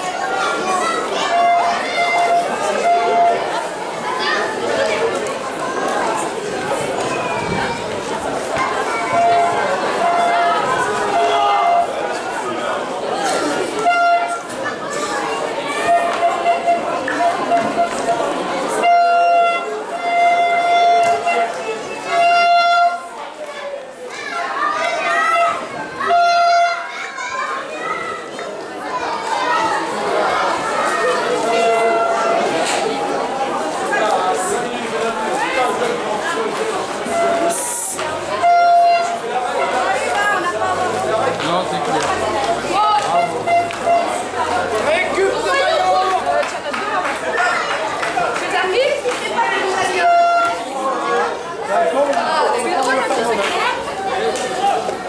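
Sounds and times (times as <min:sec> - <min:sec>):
children's high voices: 0:00.0 - 0:55.0
people chattering: 0:00.0 - 0:55.0.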